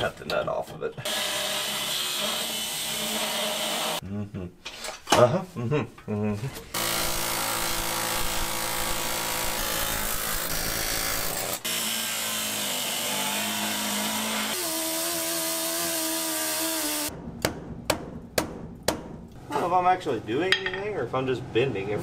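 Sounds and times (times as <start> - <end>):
angle grinder cutting steel: 1.0 - 4.0, 6.8 - 17.1.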